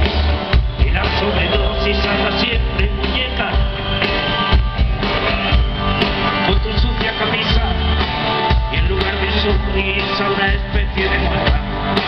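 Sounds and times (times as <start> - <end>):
drum kit: 0.0 - 12.0
electric and acoustic guitars: 0.0 - 12.0.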